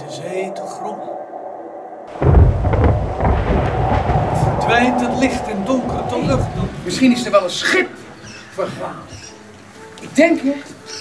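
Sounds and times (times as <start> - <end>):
deep loud rumble: 0.0 - 8.3.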